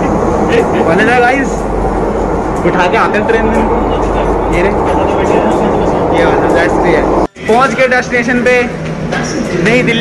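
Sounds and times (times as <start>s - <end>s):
train running from inside carriage: 0.0s - 10.0s
voices: 0.0s - 10.0s.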